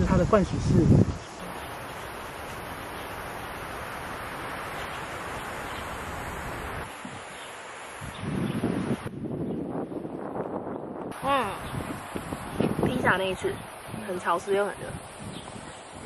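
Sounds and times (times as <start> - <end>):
wind gusts buffeting microphone: 0.0 - 16.0
wind rustling tree leaves: 0.0 - 16.0.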